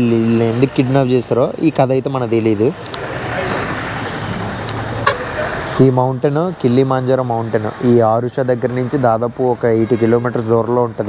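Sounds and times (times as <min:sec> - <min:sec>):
man talking: 0:00.0 - 0:03.8, 0:05.2 - 0:11.0
road traffic: 0:00.0 - 0:11.0.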